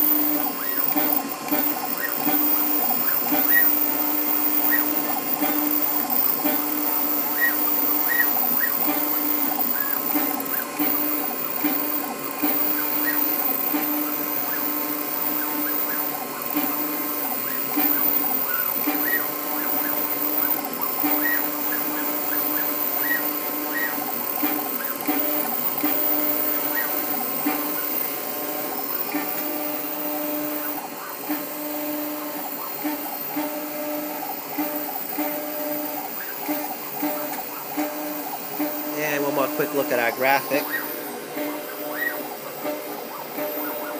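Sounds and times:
engraving machine motor hum: 0.0s - 43.9s.

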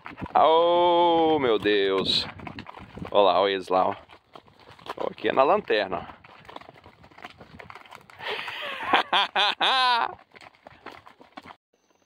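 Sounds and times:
horse hooves clopping on road: 0.0s - 12.0s.

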